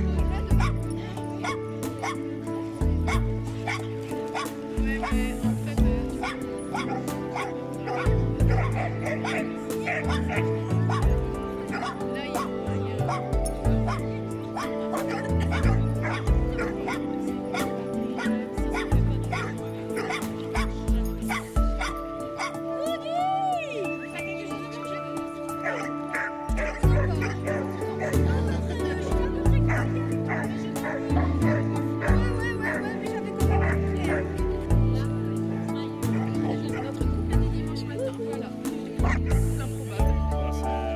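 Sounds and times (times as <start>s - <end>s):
background music: 0.0s - 40.9s
dogs barking and yipping: 0.4s - 2.3s, 3.1s - 5.2s, 6.2s - 22.8s, 25.6s - 28.9s, 29.7s - 34.4s, 39.0s - 39.5s.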